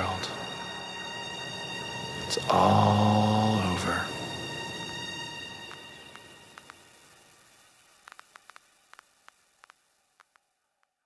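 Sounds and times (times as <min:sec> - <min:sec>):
static hiss: 0:00.0 - 0:11.0
sharp crackling clicks: 0:05.6 - 0:11.0.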